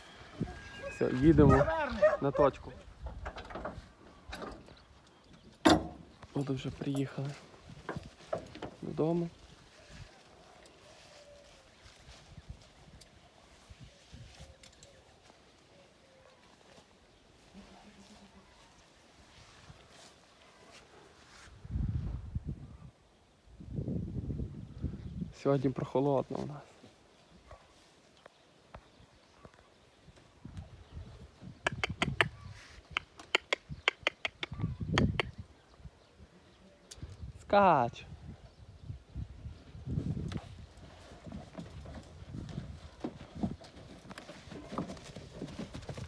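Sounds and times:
sharp clicks: 32.9s - 35.4s.

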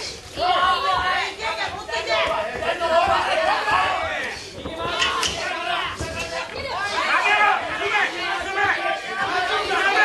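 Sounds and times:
people shouting: 0.0s - 10.0s.

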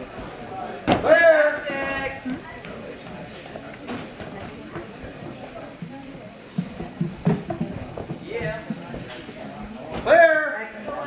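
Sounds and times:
background chatter of people: 0.0s - 11.0s
footfalls on padded platforms: 2.6s - 10.2s.

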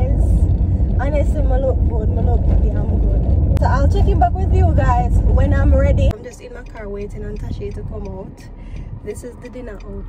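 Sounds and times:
car cabin rumble while driving: 0.0s - 10.0s
woman speaking: 1.0s - 10.0s.

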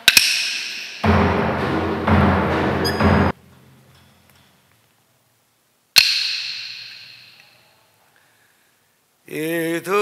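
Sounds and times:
small percussion strike ringing: 1.0s - 4.1s.

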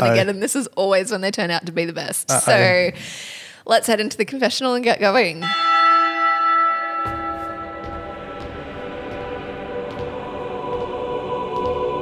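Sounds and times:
deep church bell toll: 5.4s - 10.1s.

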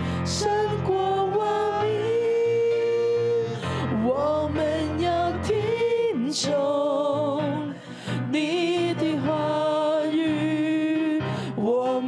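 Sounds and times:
person singing worship song: 0.0s - 12.0s.

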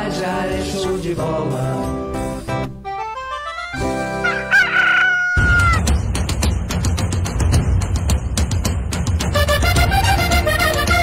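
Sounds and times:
rooster crowing: 4.2s - 5.9s
music with heavy beat: 5.4s - 11.0s.

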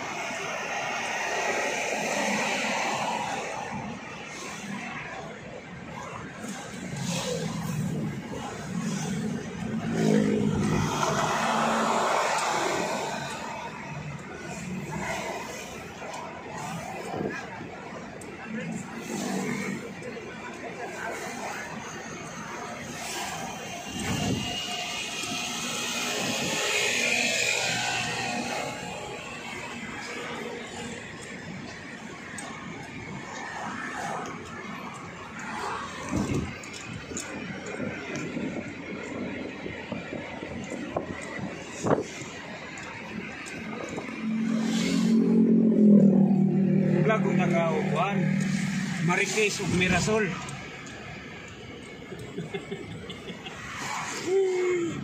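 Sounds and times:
car road and engine noise: 0.0s - 55.0s
indistinct talking: 0.0s - 55.0s.

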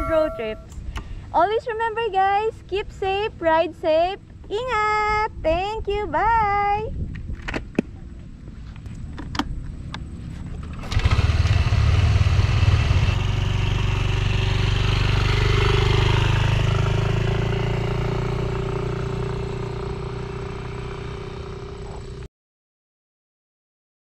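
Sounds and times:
scooter engine: 10.4s - 22.3s.

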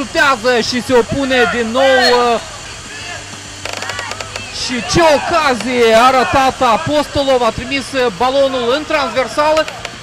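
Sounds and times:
faint shouting: 1.2s - 7.0s.

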